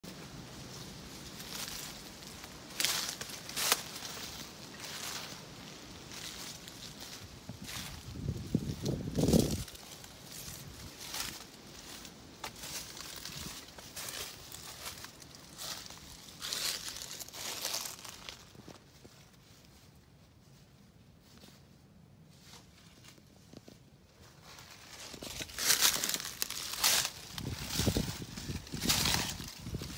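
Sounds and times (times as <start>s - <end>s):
footsteps crunching dry leaves: 0.0s - 20.0s, 22.3s - 29.9s.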